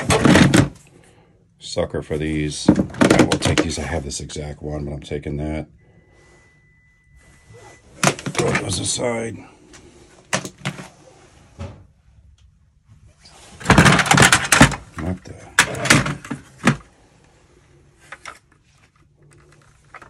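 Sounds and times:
plastic toys clattering in tub: 0:00.0 - 0:00.8, 0:02.6 - 0:03.9, 0:13.6 - 0:16.9.

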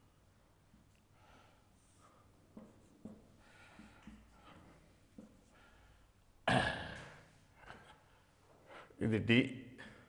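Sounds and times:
man's throaty vocal noise: 0:06.5 - 0:07.2.

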